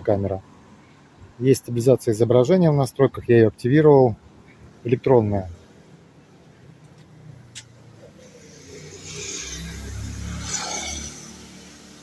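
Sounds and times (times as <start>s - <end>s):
car driving past: 7.2s - 12.0s.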